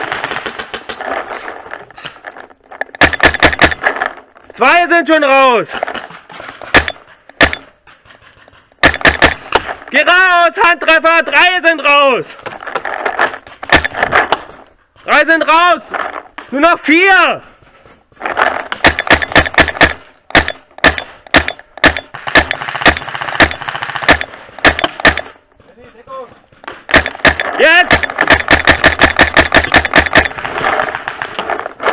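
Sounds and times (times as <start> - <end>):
paintball markers firing: 0.0 - 1.2, 2.9 - 4.2, 5.7 - 9.8, 12.4 - 14.6, 18.3 - 25.4, 26.2 - 31.9
paintball gun cracks: 26.9 - 31.9.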